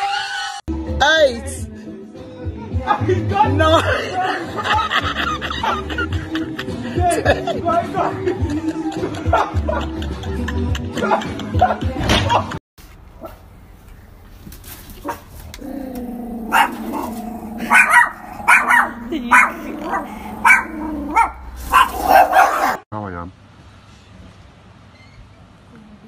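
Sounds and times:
faint outdoor background: 0.0s - 26.0s
small dogs barking: 15.0s - 22.8s
dog growling: 15.5s - 22.8s.

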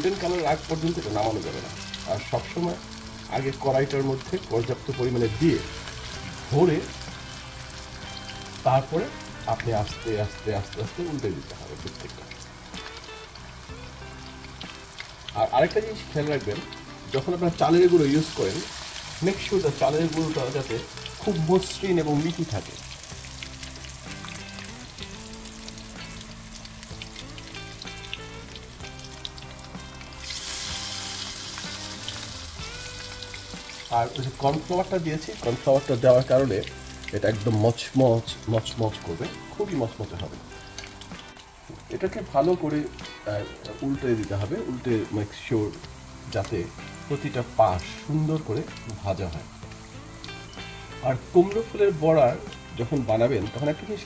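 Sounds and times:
deep-frying sizzle in oil: 0.0s - 54.0s
person speaking: 15.3s - 22.8s, 33.9s - 40.4s, 51.0s - 54.0s.

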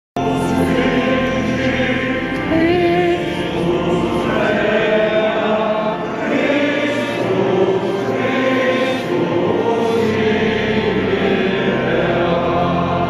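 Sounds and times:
choir singing slow chant: 0.2s - 13.0s.

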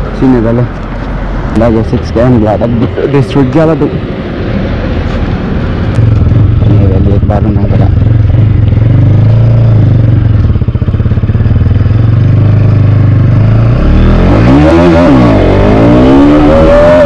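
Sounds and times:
motorcycle engine revving: 5.9s - 17.0s.

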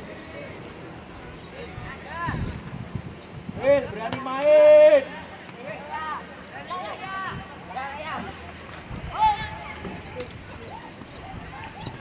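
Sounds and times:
people shouting: 3.6s - 5.2s.

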